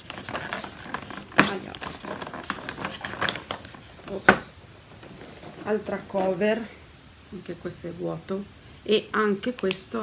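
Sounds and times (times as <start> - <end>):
cardboard crackling and tapping: 0.0 - 6.4.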